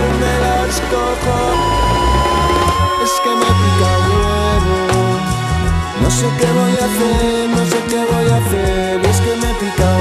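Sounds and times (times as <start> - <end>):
rock band playing: 1.2 - 10.0
long held high note: 1.4 - 4.3.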